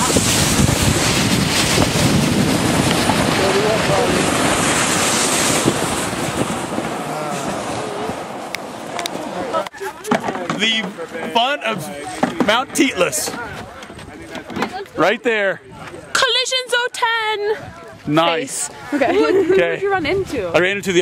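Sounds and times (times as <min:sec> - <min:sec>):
wind rushing over microphone: 0:00.0 - 0:10.0, 0:17.5 - 0:21.0
sled sliding over snow: 0:00.0 - 0:15.2.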